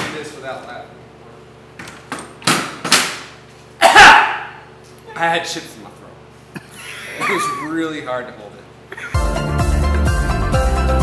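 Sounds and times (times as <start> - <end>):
man's stifled coughs: 3.8 - 4.3, 6.5 - 7.7.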